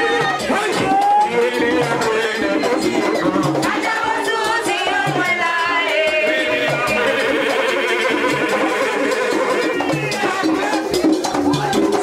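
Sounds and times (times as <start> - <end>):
rattles and hand percussion: 0.0 - 12.0
woman singing through microphone: 1.4 - 7.3.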